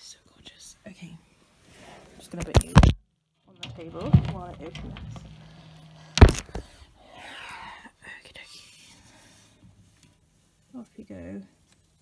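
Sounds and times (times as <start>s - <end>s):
enclosure door scraping: 3.5s - 7.1s
loud knock: 6.2s - 6.9s.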